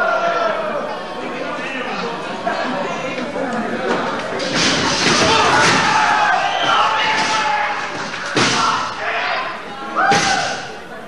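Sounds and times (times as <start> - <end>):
wrestlers thudding on ring: 4.0 - 9.0
people shouting: 5.0 - 10.7.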